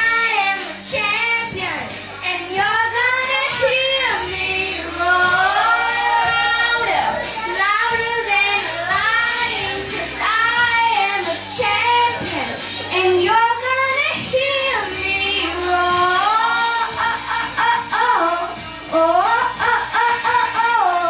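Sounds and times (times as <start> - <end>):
backing music: 0.0 - 21.0
girl singing pop song: 0.0 - 21.0.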